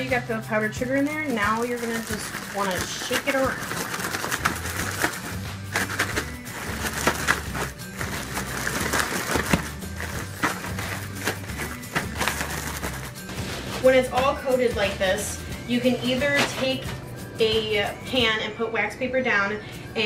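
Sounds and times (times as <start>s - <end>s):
background music: 0.0s - 20.0s
cereal rattling in plastic bag: 0.5s - 14.1s.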